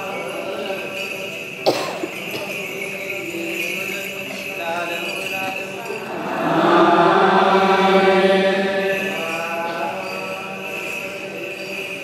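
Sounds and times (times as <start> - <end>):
group of voices chanting: 6.0 - 10.6.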